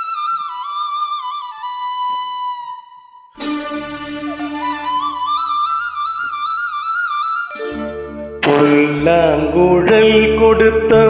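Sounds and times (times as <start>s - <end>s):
flute holding long note: 0.0s - 8.4s.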